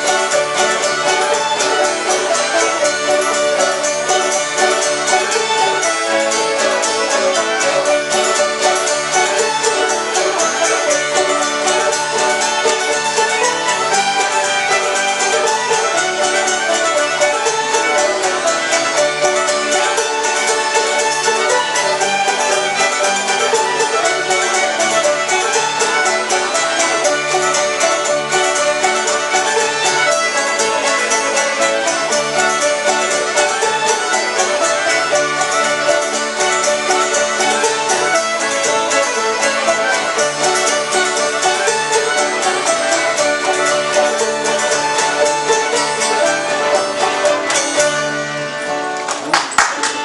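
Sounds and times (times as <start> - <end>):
banjo: 0.0 - 50.0
fiddles in unison: 0.0 - 50.0.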